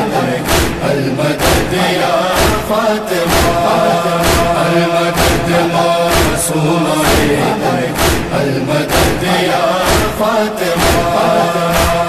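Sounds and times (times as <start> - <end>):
chorus of voices chanting: 0.0 - 12.0
lead reciter chanting: 0.0 - 12.0
thumping beat: 0.0 - 12.0.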